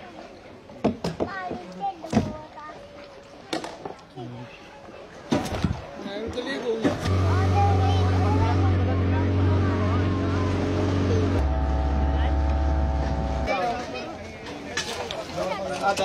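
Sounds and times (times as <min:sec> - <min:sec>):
voices: 0:01.2 - 0:16.0
engine running steadily: 0:06.9 - 0:13.9.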